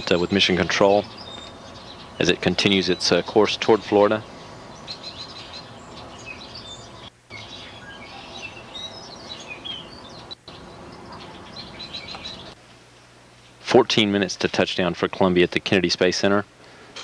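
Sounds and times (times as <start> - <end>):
small birds chirping: 0.0 - 12.6
outdoor background hiss: 0.0 - 17.0.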